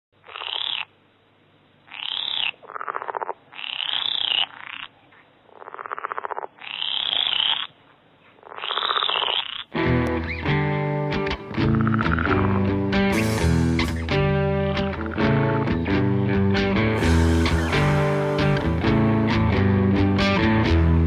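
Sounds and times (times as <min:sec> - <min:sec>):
guitar music: 0:09.8 - 0:21.0
animal pulsed trills: 0:11.6 - 0:12.8.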